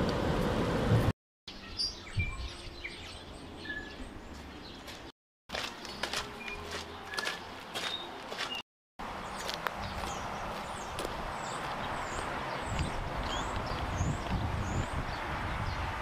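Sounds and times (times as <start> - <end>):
road noise inside moving car: 0.0 - 1.1
faint outdoor background: 0.0 - 16.0
small birds chirping: 9.2 - 15.9.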